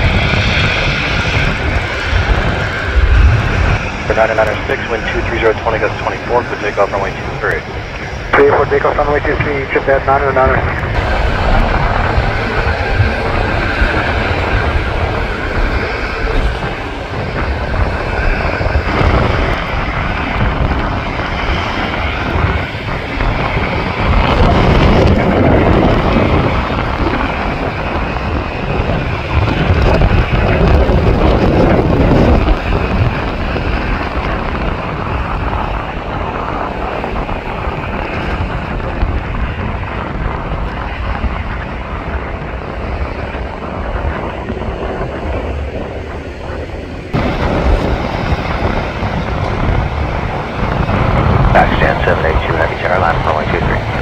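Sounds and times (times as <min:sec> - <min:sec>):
jet engine rumble: 0:00.0 - 0:54.0
wind on microphone: 0:00.0 - 0:54.0.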